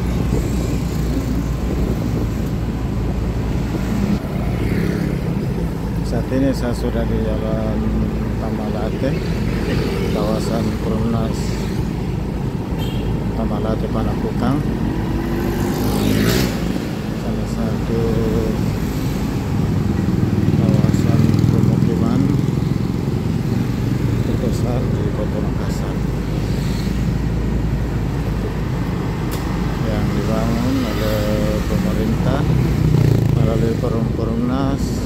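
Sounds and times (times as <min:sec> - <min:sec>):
engine and road noise: 0:00.0 - 0:35.0
motorcycles and cars passing: 0:00.0 - 0:35.0.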